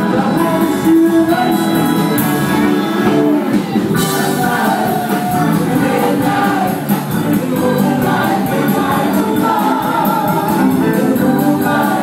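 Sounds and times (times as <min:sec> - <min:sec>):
voices singing together: 0:00.0 - 0:02.2, 0:03.5 - 0:12.0
live rock band playing: 0:00.0 - 0:12.0.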